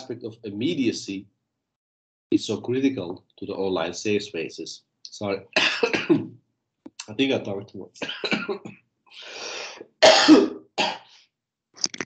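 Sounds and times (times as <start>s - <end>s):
man coughing: 5.6s - 6.3s, 8.0s - 8.7s, 10.0s - 11.0s.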